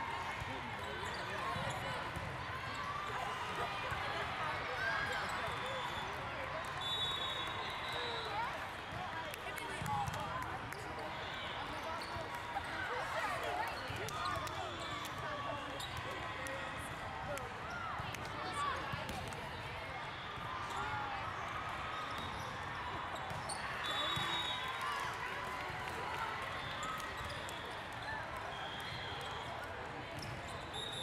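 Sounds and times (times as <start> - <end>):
babble of many voices: 0.0 - 30.7
referee's whistle: 6.7 - 8.6, 23.5 - 24.9, 30.5 - 31.0.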